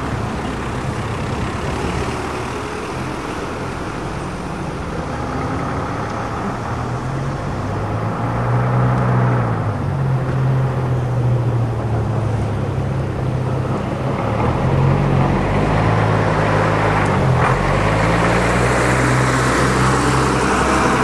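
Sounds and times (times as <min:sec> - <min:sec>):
bus engine running: 0:00.0 - 0:21.0
road and traffic noise: 0:00.0 - 0:21.0.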